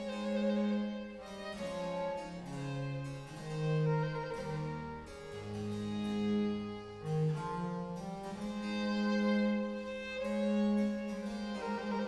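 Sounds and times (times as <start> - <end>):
bowed strings: 0.0 - 12.0
harpsichord: 0.0 - 12.0.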